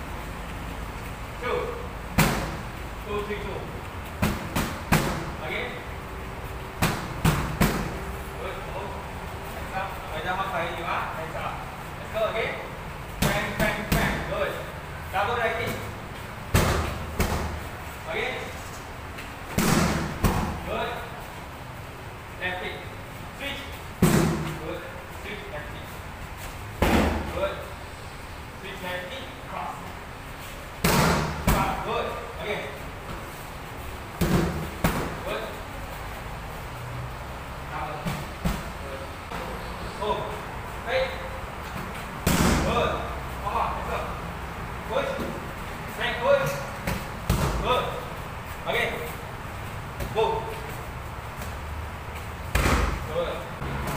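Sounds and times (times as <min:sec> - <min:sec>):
knee strikes on pads: 0:19.5 - 0:20.6, 0:24.0 - 0:24.6, 0:30.8 - 0:31.8, 0:34.2 - 0:35.2, 0:42.2 - 0:42.8, 0:46.8 - 0:47.7, 0:52.5 - 0:53.1.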